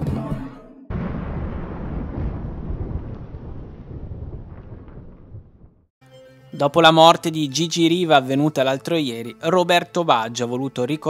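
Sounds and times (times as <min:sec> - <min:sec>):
low rumbling noise: 0:00.9 - 0:05.9.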